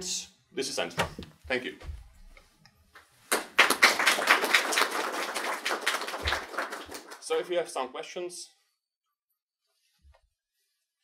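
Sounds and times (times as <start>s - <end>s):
small audience applauding: 3.3s - 7.7s.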